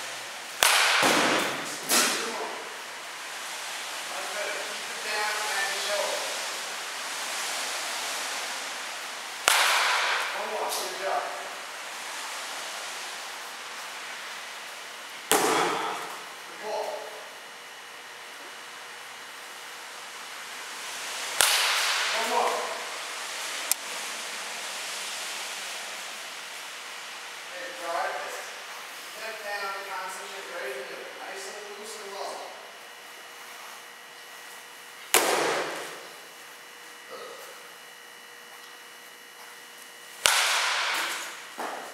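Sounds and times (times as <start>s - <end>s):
baseball bat cracking ball: 0.6s - 2.3s, 9.4s - 10.8s, 15.3s - 16.3s, 21.4s - 22.7s, 35.1s - 36.0s, 40.2s - 41.9s.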